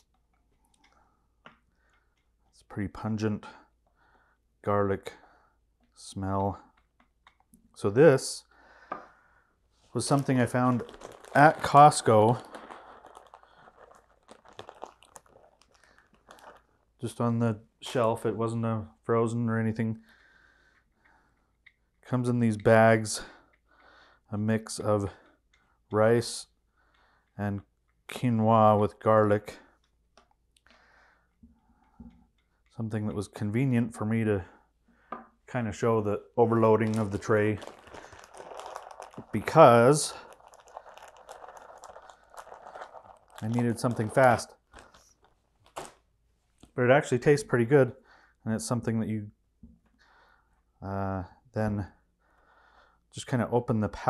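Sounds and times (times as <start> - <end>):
plastic bag crinkling: 9.8 - 17.2, 36.4 - 46.1.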